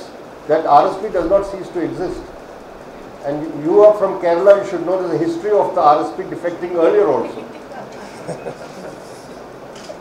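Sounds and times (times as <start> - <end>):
murmur of voices: 0.5 - 9.4
light laughter: 7.1 - 9.3.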